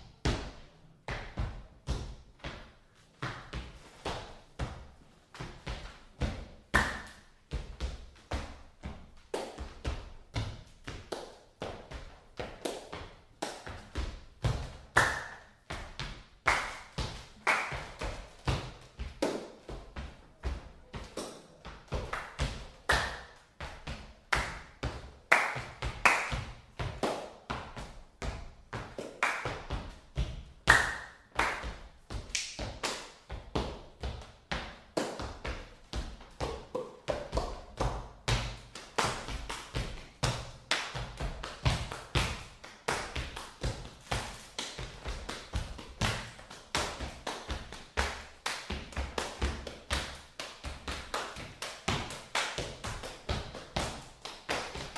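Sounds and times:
hand claps: 6.7s - 7.3s, 9.2s - 9.8s, 12.4s - 14.0s, 14.9s - 18.4s, 19.1s - 19.6s, 21.0s - 23.4s, 24.3s - 27.5s, 28.8s - 29.9s, 30.7s - 33.3s, 34.9s - 35.5s, 36.4s - 54.9s.

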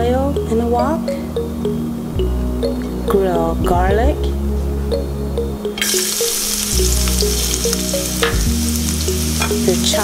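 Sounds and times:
background music: 0.0s - 10.0s
garlic sizzling in hot oil: 5.8s - 10.0s.

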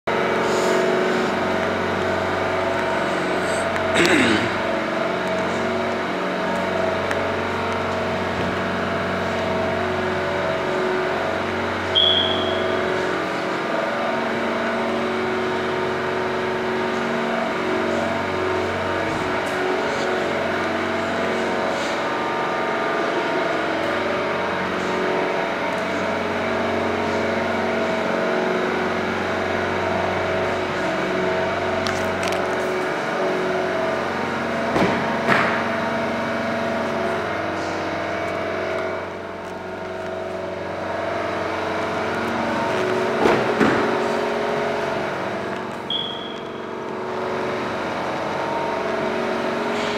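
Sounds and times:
diesel engine idling: 0.1s - 49.9s.

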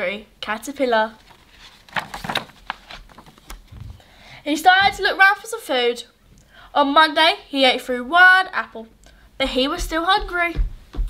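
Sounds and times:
paper page turning: 1.2s - 4.0s.

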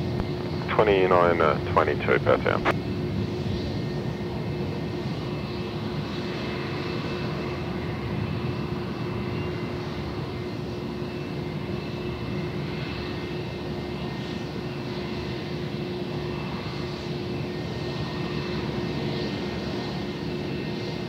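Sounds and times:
jet engines droning: 0.0s - 21.0s.

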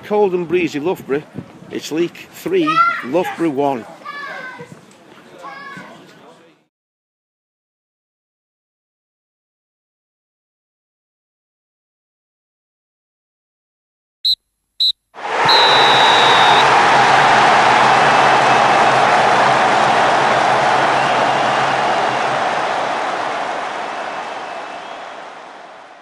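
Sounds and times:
referee's whistle blasts: 14.8s - 16.8s
crowd noise rushing: 15.2s - 26.0s.

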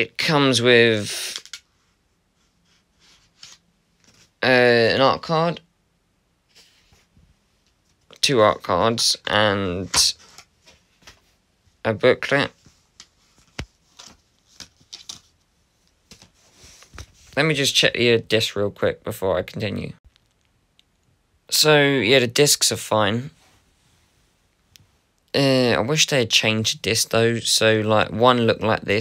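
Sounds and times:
card rustling against case: 13.0s - 15.4s.

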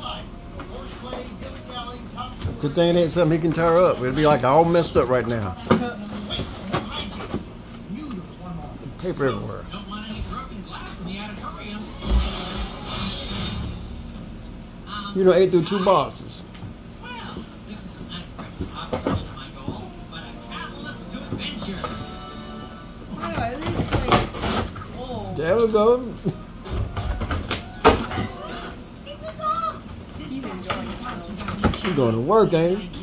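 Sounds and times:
television music: 0.0s - 33.0s
television voices: 0.0s - 33.0s.

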